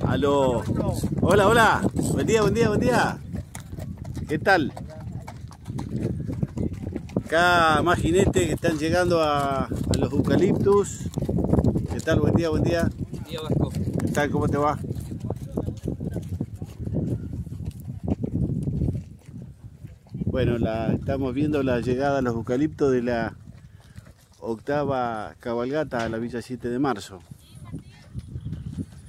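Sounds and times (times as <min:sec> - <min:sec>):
horse hooves clip-clopping on dirt road: 0:00.0 - 0:29.0.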